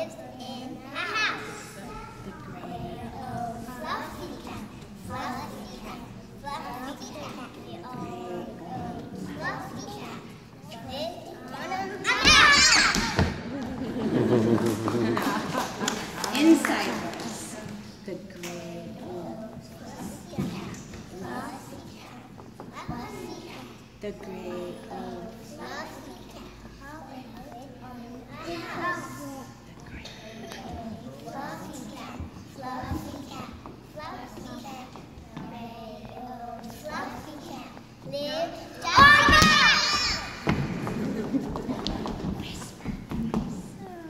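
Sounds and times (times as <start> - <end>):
young children's voices: 0.0 - 14.3, 15.0 - 44.0.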